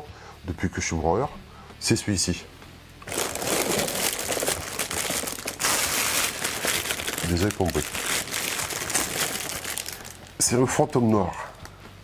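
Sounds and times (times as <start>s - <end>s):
plastic bag crinkling: 3.0s - 10.4s.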